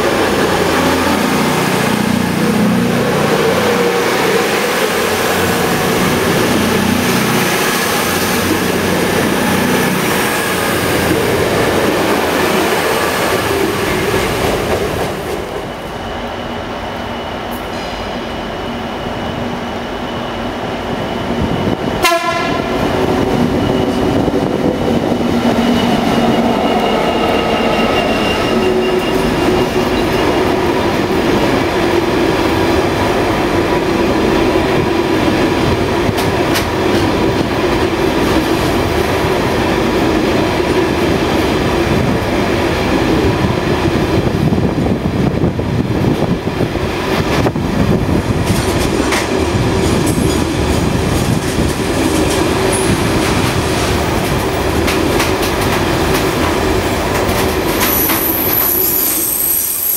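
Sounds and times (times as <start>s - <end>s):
freight train rumbling past: 0.0s - 59.9s
thin high squeal: 25.5s - 30.4s.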